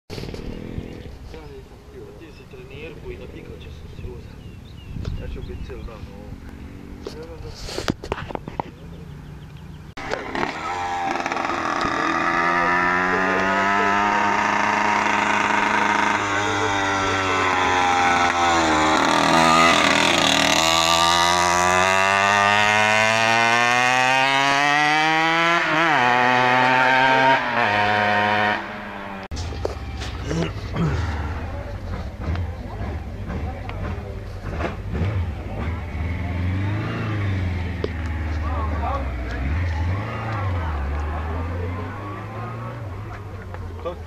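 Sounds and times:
two-stroke moped engine revving: 0.1s - 1.4s, 10.0s - 44.0s.

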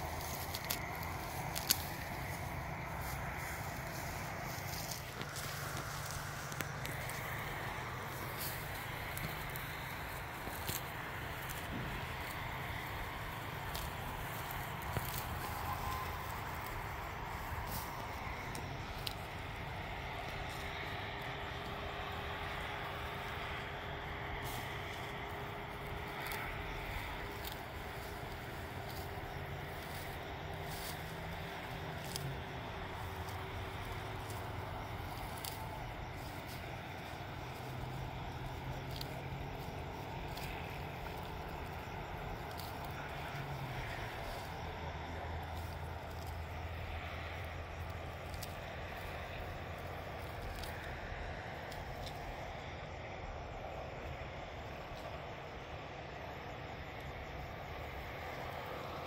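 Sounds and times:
weeds rustling and snapping: 0.0s - 55.5s
low background rumble: 0.0s - 59.0s.

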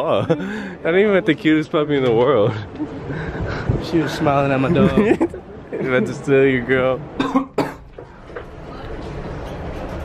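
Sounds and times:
steady background noise: 0.0s - 10.0s
man coughing: 7.2s - 7.8s.

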